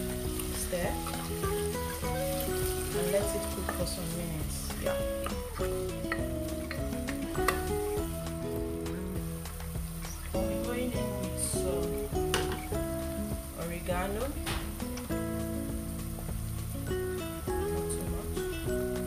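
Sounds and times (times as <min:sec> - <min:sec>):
wooden spoon stirring: 0:00.0 - 0:08.5
background music: 0:00.0 - 0:19.0
onions sizzling in hot oil: 0:00.0 - 0:19.0.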